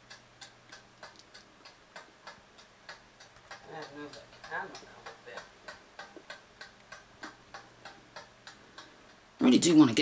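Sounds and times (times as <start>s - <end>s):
faint irregular clicks: 0.0s - 9.4s
steady low hum: 0.0s - 10.0s.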